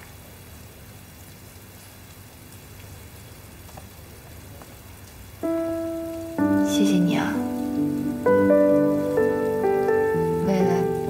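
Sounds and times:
faint steady hiss: 0:00.0 - 0:11.0
soft sustained background music: 0:05.4 - 0:11.0.

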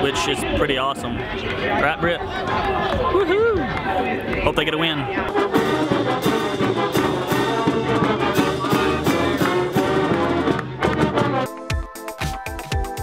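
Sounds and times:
marching band playing: 0:04.5 - 0:13.0
drum beat with cymbals: 0:05.5 - 0:10.6
electronic background music: 0:11.0 - 0:13.0.

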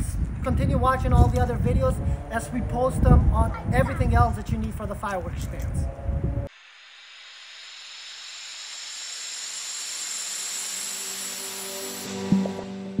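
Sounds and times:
hissing riser: 0:05.8 - 0:13.0.

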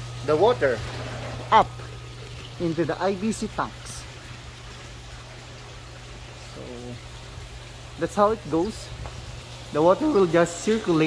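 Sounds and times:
low steady hum: 0:00.0 - 0:11.0
running water rushing: 0:00.0 - 0:11.0
person speaking: 0:09.7 - 0:11.0.

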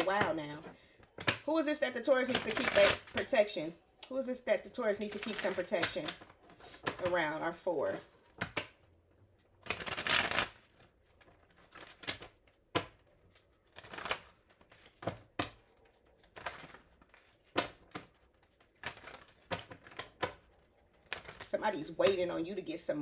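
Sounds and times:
cards being riffle shuffled: 0:09.6 - 0:21.5.

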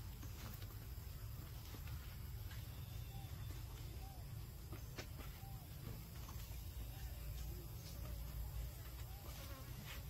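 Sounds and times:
flying insect buzzing: 0:09.0 - 0:10.0.

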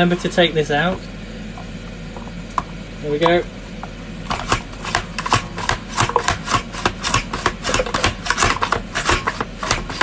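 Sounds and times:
room hum and hiss: 0:00.0 - 0:10.0.

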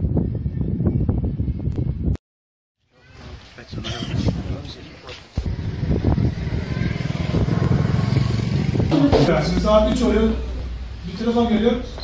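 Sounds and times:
vehicle engine running: 0:05.4 - 0:10.9.

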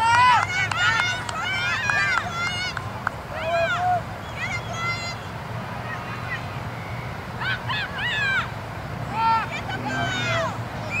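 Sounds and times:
children shouting: 0:00.0 - 0:08.5, 0:09.1 - 0:11.0.

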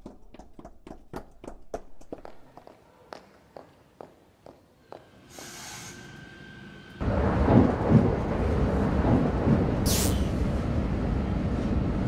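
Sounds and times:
train rumbling from inside carriage: 0:07.0 - 0:12.0.

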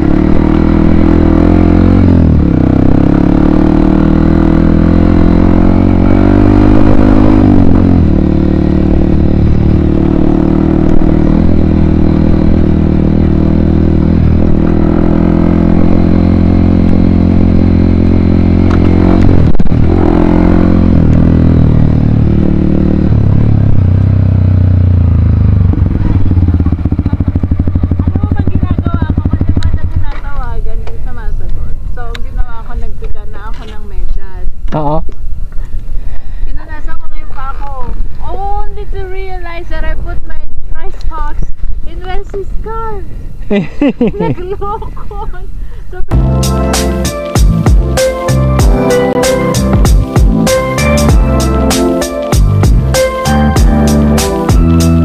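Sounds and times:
motorcycle engine running: 0:00.0 - 0:33.9, 0:46.1 - 0:55.0.

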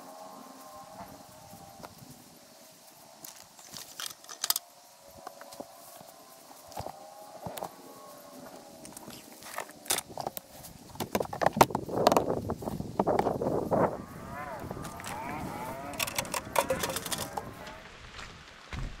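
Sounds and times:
grass clippings rustling: 0:00.0 - 0:19.0.

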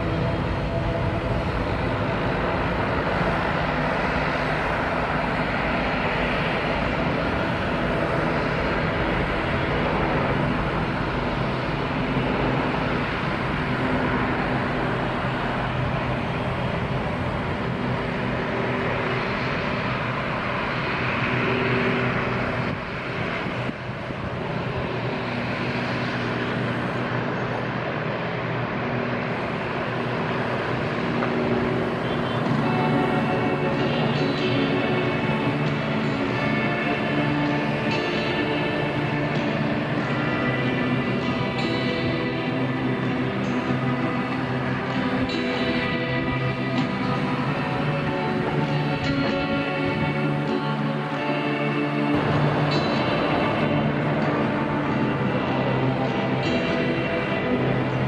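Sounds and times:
distant jet engine roar: 0:00.0 - 0:58.0.

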